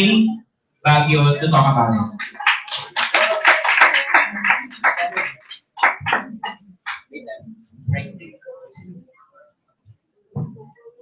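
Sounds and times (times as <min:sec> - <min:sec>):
audience applauding: 0:02.2 - 0:07.0.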